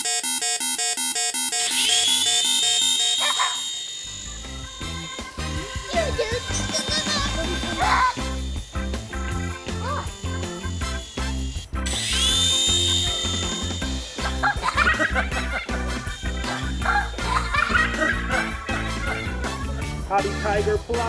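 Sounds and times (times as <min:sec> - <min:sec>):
toy helicopter rotor whine: 0:01.2 - 0:21.0
background music with a beat: 0:04.6 - 0:21.0.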